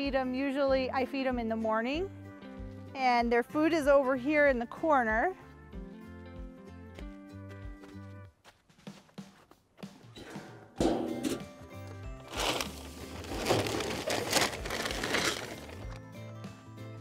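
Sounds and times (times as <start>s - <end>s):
background music: 0.0s - 17.0s
metal can clank: 10.2s - 11.6s
feed rattling as scooped: 12.3s - 16.0s.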